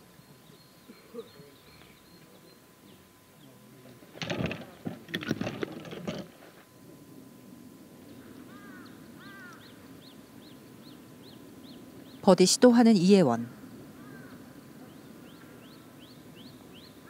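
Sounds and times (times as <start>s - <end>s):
bird chirping: 0.2s - 3.6s, 8.2s - 12.5s, 14.0s - 17.0s
bird warbling calls: 8.1s - 12.5s, 13.1s - 17.0s.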